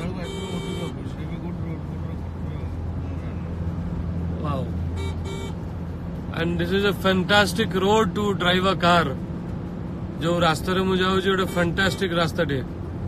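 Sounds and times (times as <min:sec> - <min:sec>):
car engine and tyre hum: 0:00.0 - 0:13.0.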